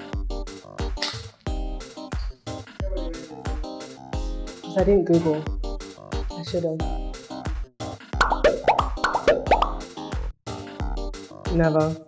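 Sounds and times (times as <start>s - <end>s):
electronic background music: 0.0s - 12.0s
cartoon rising blips: 8.2s - 9.8s.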